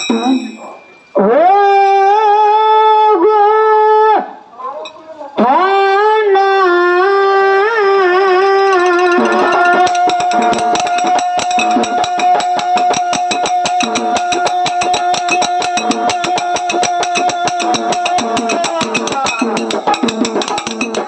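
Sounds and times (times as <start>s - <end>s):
hand cymbals struck: 0.0s - 1.1s, 8.4s - 21.0s
drum beats: 8.6s - 21.0s.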